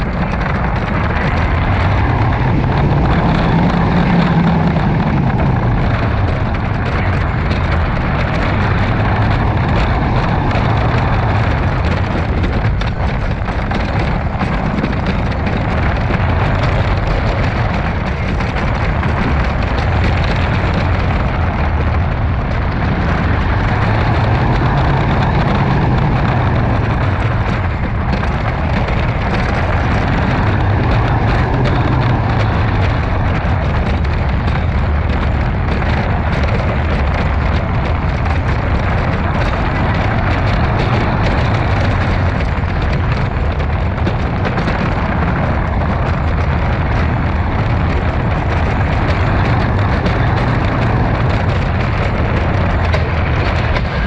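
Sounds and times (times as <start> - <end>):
roller coaster train rumbling: 0.0 - 54.0
wheels rattling on wooden track: 0.0 - 54.0.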